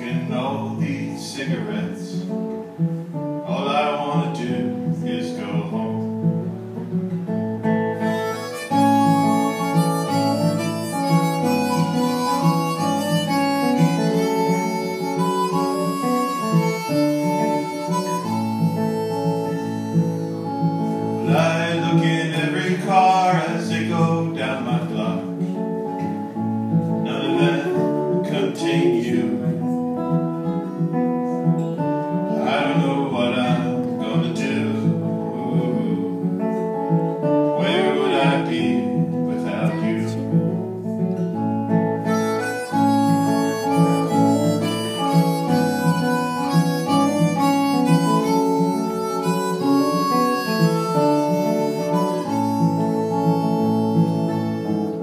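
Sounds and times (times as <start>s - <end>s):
fingerpicked acoustic guitar: 0.0s - 55.0s
harmonica: 0.0s - 55.0s.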